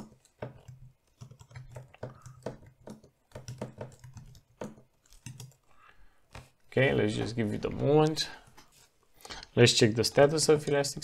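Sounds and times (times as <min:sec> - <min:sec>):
keyboard keys clicking: 0:00.0 - 0:05.6.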